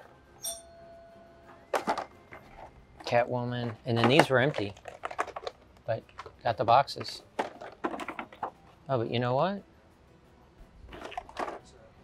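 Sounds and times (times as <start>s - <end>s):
faint held tone: 0.0s - 3.1s
bright chime-like ring: 0.4s - 1.5s.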